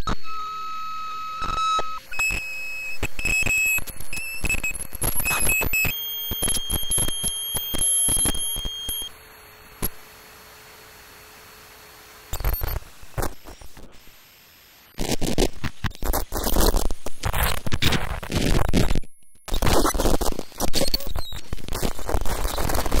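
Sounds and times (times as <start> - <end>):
electronic beeping tones: 0.0 - 9.1
rapid clicks and crackles: 1.5 - 9.1, 12.3 - 14.0, 15.0 - 23.0.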